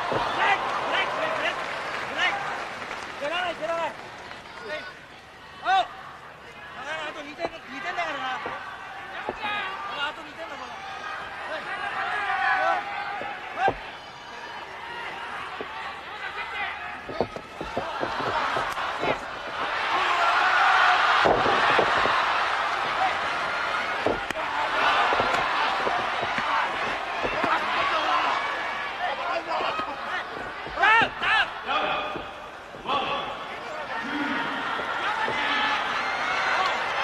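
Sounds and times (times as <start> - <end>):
arena crowd noise: 0.0 - 37.0
body hitting ring canvas: 21.0 - 28.0.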